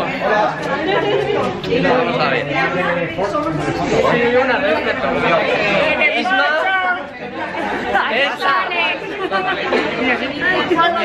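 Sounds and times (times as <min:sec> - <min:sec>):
group chatter: 0:00.0 - 0:11.0.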